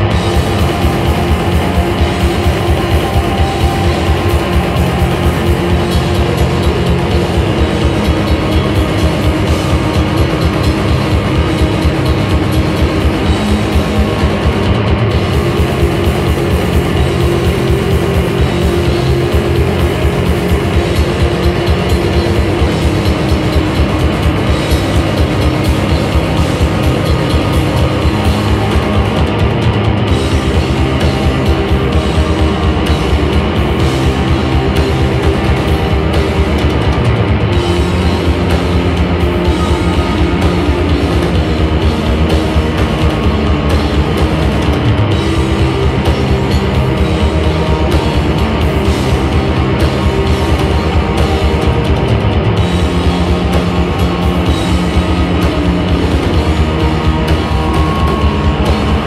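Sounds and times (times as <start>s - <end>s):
bass guitar: 0.0s - 59.0s
drum kit: 0.0s - 59.0s
electric guitars: 0.0s - 59.0s.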